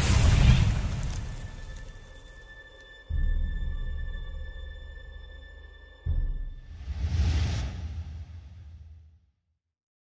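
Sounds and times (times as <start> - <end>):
low hit: 6.7 - 9.1.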